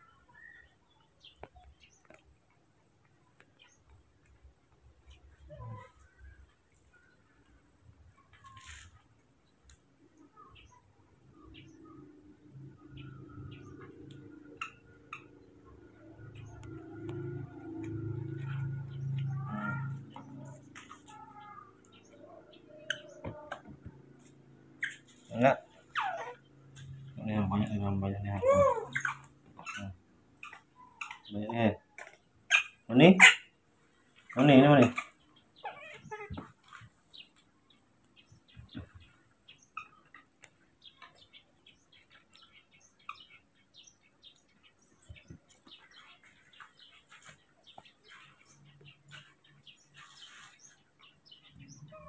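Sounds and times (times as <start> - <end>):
baby monkey squeaking: 24.8 - 25.2, 25.8 - 26.5, 28.4 - 31.3, 32.5 - 33.5, 34.8 - 36.5.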